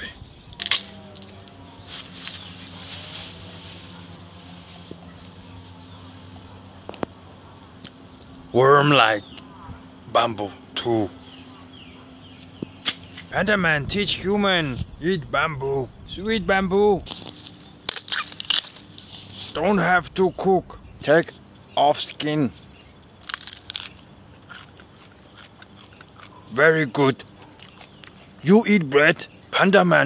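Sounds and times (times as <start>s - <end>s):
steady low hum: 0.0s - 30.0s
falling chirps: 10.6s - 26.7s
sharp snap: 12.8s - 13.3s
crunchy chewing: 17.1s - 19.6s, 22.6s - 28.8s.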